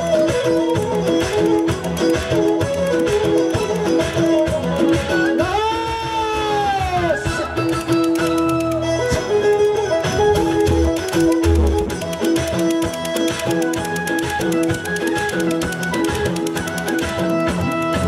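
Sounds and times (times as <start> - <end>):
plucked string riff: 0.0 - 5.6, 7.4 - 18.0
fiddle-like melody: 0.0 - 18.0
low drum beats: 10.0 - 12.6.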